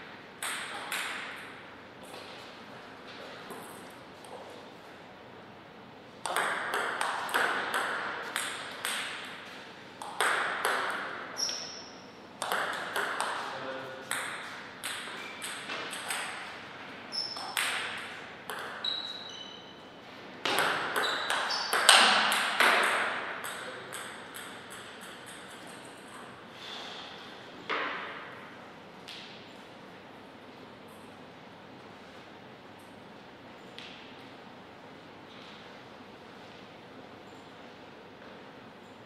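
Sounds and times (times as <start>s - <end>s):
short high squeaks: 18.8s - 19.8s.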